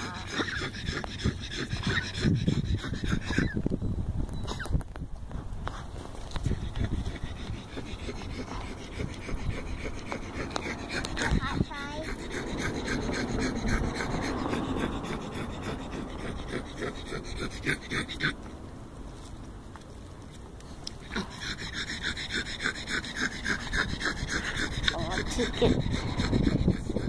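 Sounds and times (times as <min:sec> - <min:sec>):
dog panting: 0:00.0 - 0:03.6, 0:06.3 - 0:18.6, 0:20.8 - 0:27.0.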